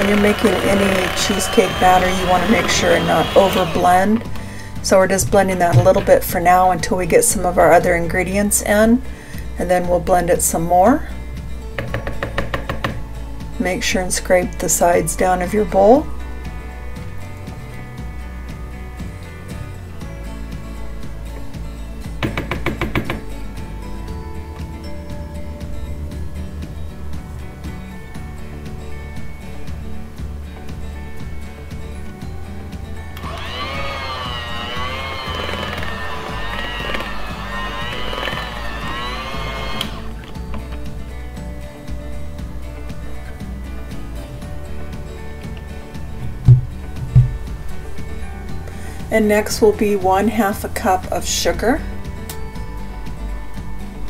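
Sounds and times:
electric hand mixer whining: 0.0s - 4.3s, 33.2s - 40.2s
background music: 0.0s - 54.0s
low thumps: 1.8s - 6.8s, 46.1s - 47.7s.

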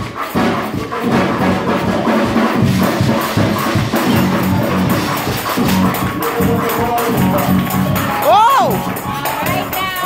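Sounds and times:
drums beating: 0.0s - 10.0s
gospel band music: 0.0s - 10.0s.

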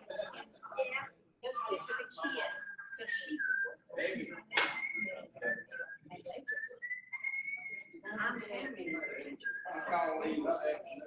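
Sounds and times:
people talking: 0.0s - 6.8s, 7.6s - 11.0s
person whistling a tune: 1.6s - 8.0s, 8.6s - 10.4s.

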